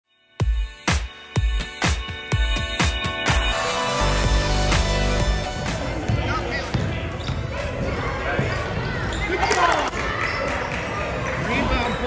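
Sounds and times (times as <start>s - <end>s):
basketball bouncing on wooden floor: 6.0s - 7.9s.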